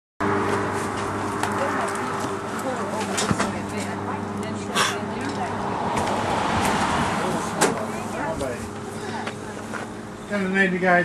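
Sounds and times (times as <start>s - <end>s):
vehicle engine idling: 0.2s - 11.0s
low voices talking: 1.4s - 11.0s.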